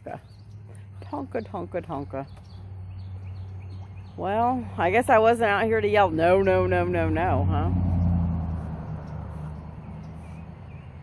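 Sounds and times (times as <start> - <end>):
low motor hum: 0.0 - 11.0.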